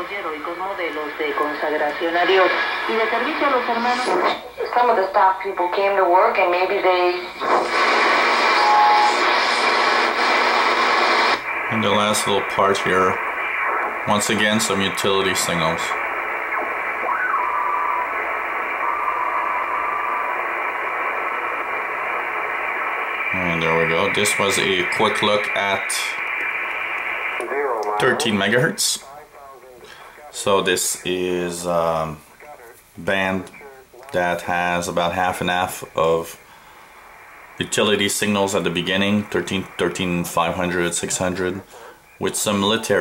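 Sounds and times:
radio static hiss: 0.0s - 43.0s
man talking: 11.6s - 13.2s, 14.0s - 16.0s, 23.3s - 26.2s, 27.4s - 36.4s, 37.6s - 43.0s.

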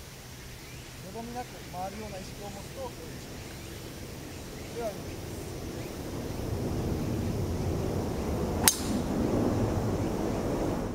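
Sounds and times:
golf club striking ball: 8.6s - 9.1s.

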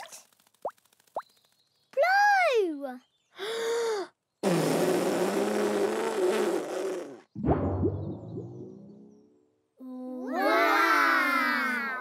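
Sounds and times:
short breath: 3.4s - 4.1s
long strained blowing with hum: 4.4s - 7.3s.

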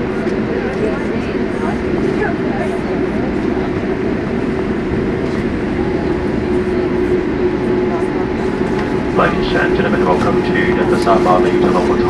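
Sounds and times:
airliner cabin engine rumble: 0.0s - 12.0s
constant low hum: 0.0s - 12.0s.

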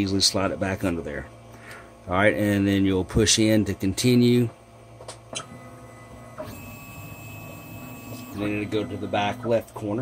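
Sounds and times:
printer stepper motors whining: 5.3s - 10.0s.

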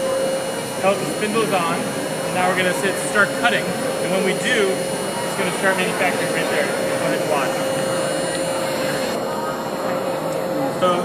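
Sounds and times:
crowd chatter: 0.0s - 11.0s
milling machine spindle whine: 0.0s - 11.0s.

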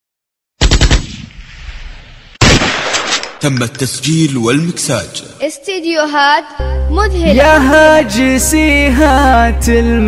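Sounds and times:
rapid gunfire with echo: 0.6s - 1.5s, 2.4s - 3.4s.

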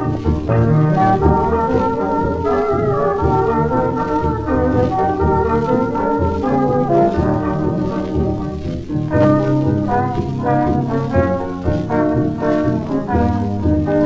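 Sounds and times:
jazz dance band playing: 0.0s - 14.0s.

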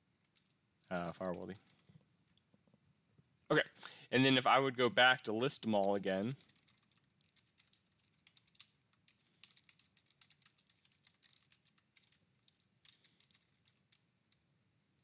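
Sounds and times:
typing on computer keyboard: 5.7s - 14.0s.

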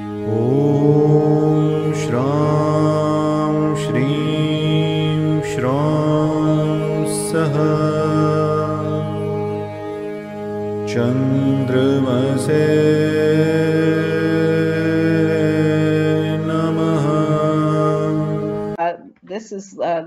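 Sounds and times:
chanted mantra singing: 0.0s - 18.8s
steady drone: 0.0s - 18.8s.

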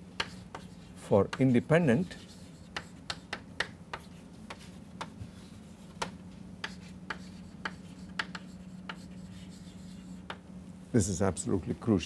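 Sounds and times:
steady low hum: 0.0s - 12.0s
chalk tapping and scraping: 0.2s - 10.4s.

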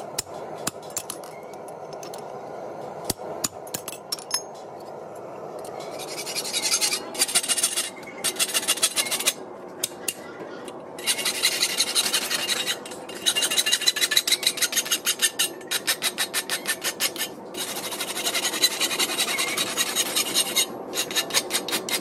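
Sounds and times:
rasp filing a horseshoe: 5.8s - 22.0s.

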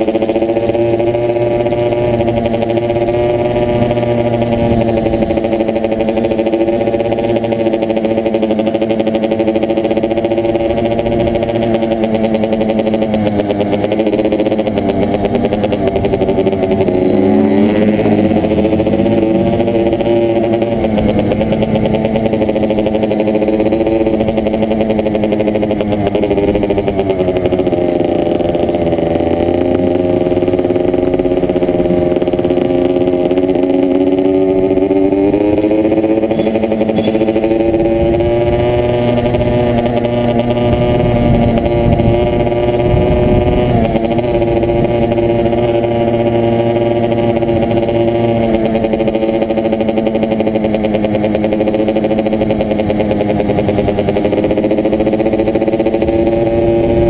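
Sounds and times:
dirt bike engine: 0.0s - 57.0s.

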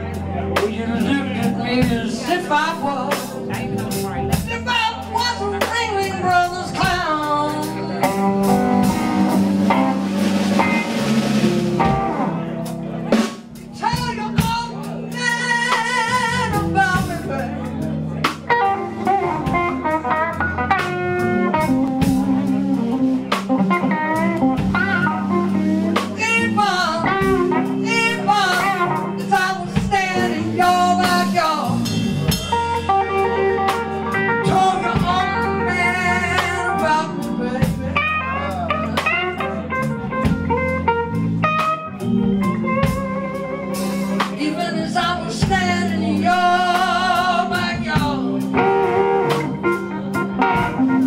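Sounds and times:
man singing: 0.0s - 8.2s, 13.7s - 17.8s, 26.1s - 32.6s, 34.0s - 39.8s, 44.2s - 49.0s
bass: 0.0s - 51.0s
drum kit: 0.0s - 51.0s
electric guitar with bent notes: 0.0s - 51.0s.

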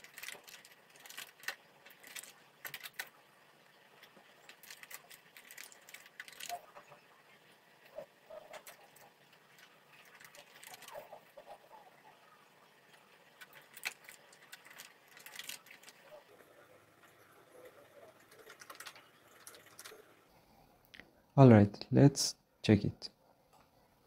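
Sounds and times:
keyboard typing clicks: 18.2s - 20.0s.

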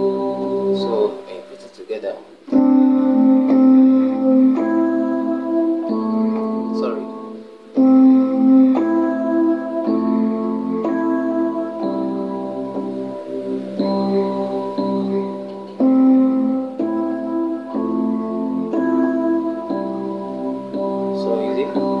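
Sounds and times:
electronic keyboard piano chords: 0.0s - 22.0s.

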